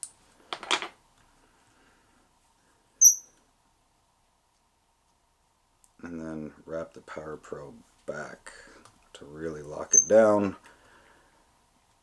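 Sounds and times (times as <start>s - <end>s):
scissors blades squeaking: 3.0s - 3.2s, 9.9s - 10.2s.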